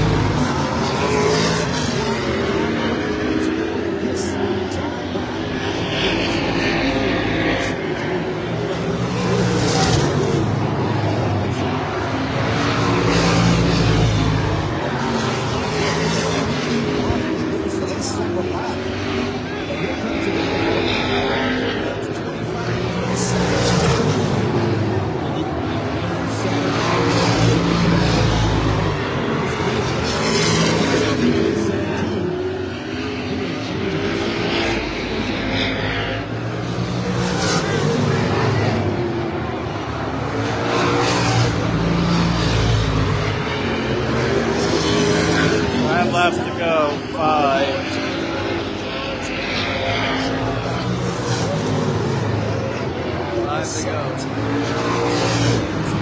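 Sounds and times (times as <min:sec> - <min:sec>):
stock car engines racing: 0:00.0 - 0:56.0.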